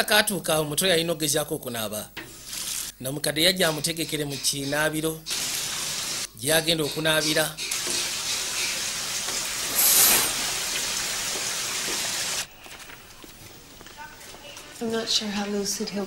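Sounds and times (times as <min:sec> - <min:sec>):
bath tap running into tub: 0:05.3 - 0:06.3, 0:07.7 - 0:12.5.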